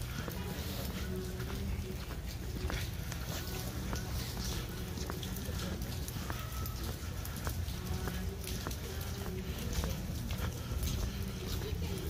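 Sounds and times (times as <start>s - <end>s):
footsteps on wet stone: 0.0s - 12.0s.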